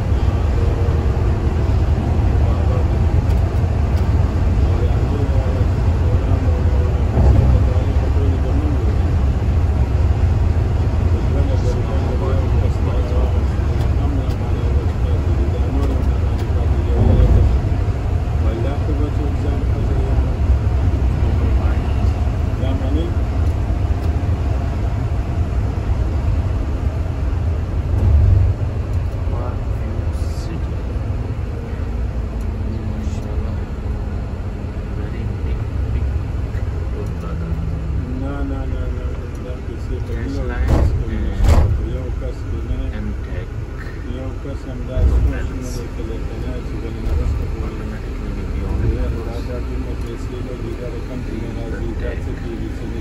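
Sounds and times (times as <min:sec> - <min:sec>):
bus engine and tyres rumbling: 0:00.0 - 0:53.0.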